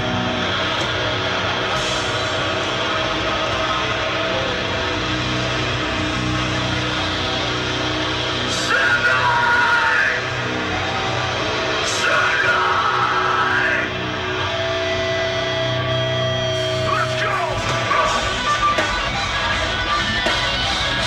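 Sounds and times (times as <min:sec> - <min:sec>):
metal band playing live: 0:00.0 - 0:21.0
person yelling: 0:08.5 - 0:10.5, 0:11.8 - 0:14.0.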